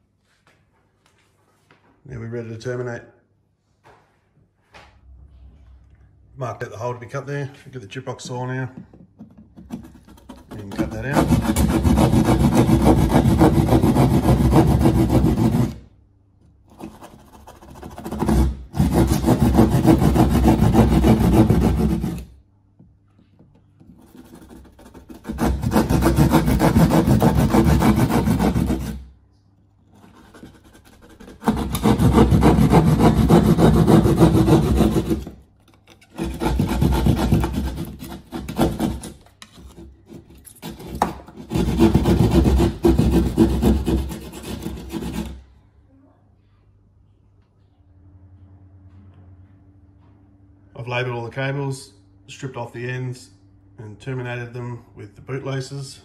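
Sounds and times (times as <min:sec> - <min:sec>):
saw cutting plasterboard: 0:09.3 - 0:15.9, 0:16.7 - 0:22.4, 0:23.9 - 0:29.1, 0:29.9 - 0:45.5.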